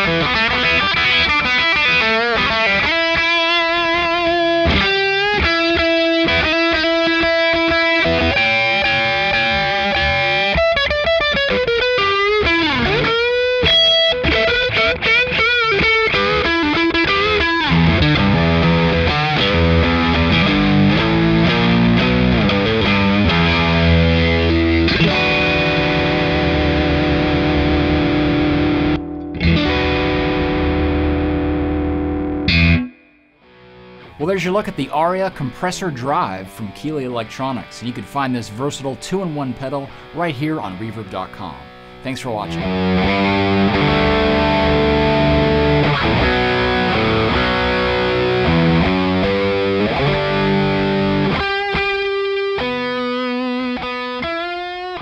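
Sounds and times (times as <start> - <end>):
overdriven electric guitar: 0.0 - 55.0.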